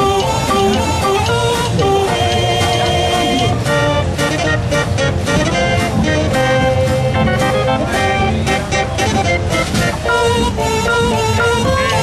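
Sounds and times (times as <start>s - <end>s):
drum and cymbal beats: 0.0s - 12.0s
fair organ playing: 0.0s - 12.0s.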